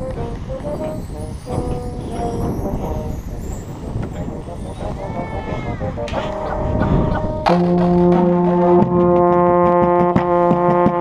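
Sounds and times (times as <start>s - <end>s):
heavy low rumble: 0.0s - 10.2s
brass notes: 0.0s - 11.0s
drumline playing: 6.1s - 11.0s.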